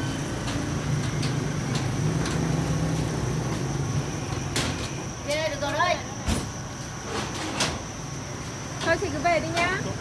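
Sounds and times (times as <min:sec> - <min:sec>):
vehicle engine humming: 0:00.0 - 0:05.2.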